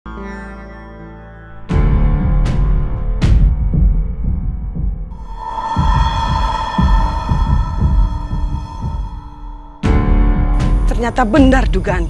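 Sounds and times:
low heartbeat-like thumps: 3.2s - 10.5s
droning high tone: 5.1s - 10.3s.

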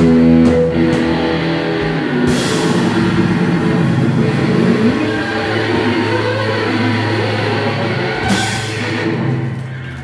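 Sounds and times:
electric guitar drone: 0.0s - 10.0s.

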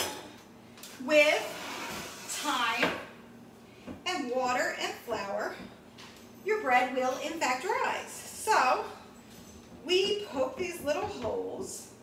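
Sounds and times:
woman's voice: 1.0s - 1.6s, 2.3s - 3.0s, 4.1s - 5.7s, 6.5s - 9.0s, 9.8s - 12.0s.

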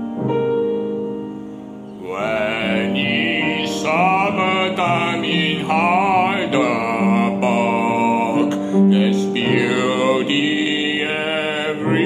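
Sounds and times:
piano accompaniment: 0.0s - 12.0s
man singing with vibrato: 2.0s - 12.0s.

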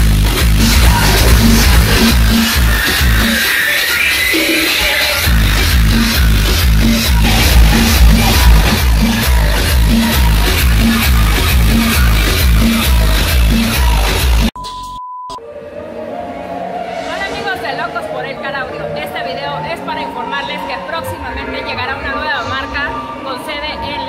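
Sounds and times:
electronic dance music through car speakers: 0.0s - 14.9s
short steady beep: 14.6s - 15.4s.

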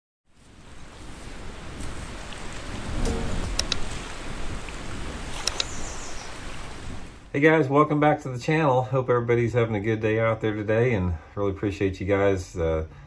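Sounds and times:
wind: 0.2s - 13.0s
water waves rushing: 0.6s - 7.3s.

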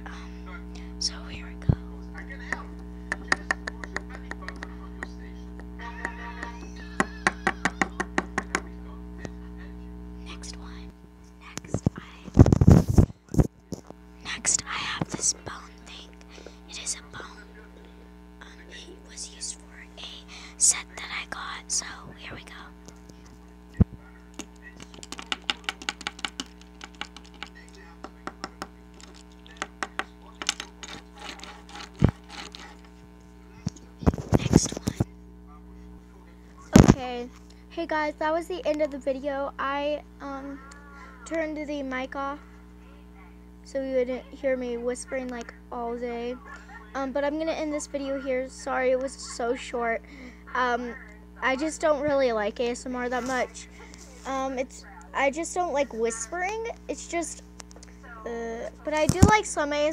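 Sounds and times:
steady low hum: 0.0s - 59.9s
scraping and handling: 29.0s - 33.0s.

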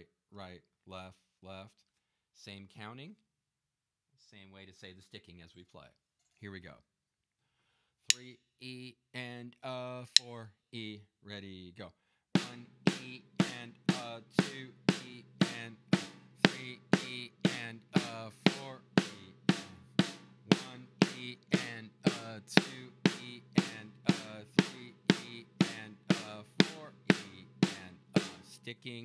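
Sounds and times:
snare drum double strokes: 12.4s - 29.0s.

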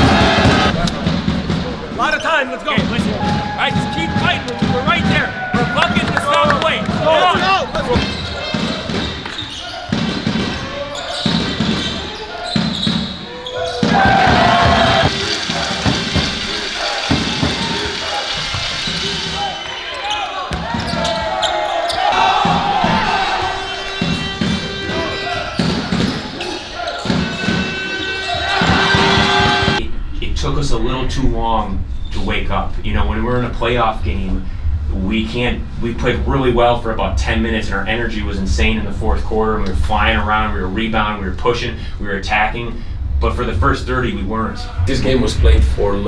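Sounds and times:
players' voices echoing: 0.0s - 46.0s.

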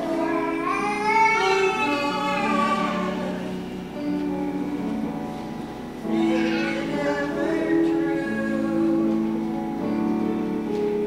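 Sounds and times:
person singing: 0.0s - 4.2s, 6.0s - 10.5s
keyboard sustaining chords: 0.0s - 11.0s.

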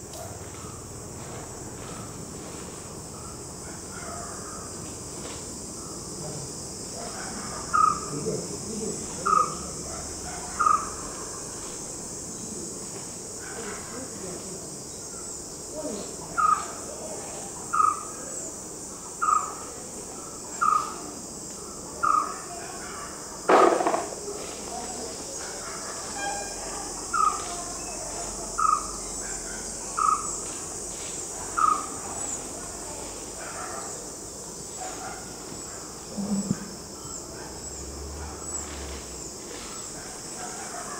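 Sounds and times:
crickets trilling: 0.0s - 40.9s.

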